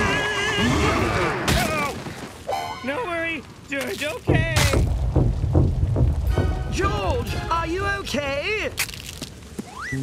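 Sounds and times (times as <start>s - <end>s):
loud low booming rumble: 4.3s - 6.9s.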